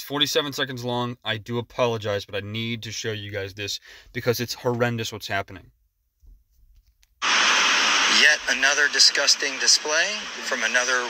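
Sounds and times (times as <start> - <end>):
loud steady rushing noise: 7.2 - 11.0.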